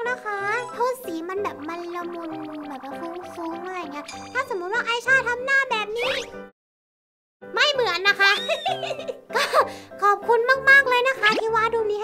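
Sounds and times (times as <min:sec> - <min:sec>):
background music: 0:00.0 - 0:06.5, 0:07.4 - 0:12.0
woman speaking and giggling: 0:08.3 - 0:09.6.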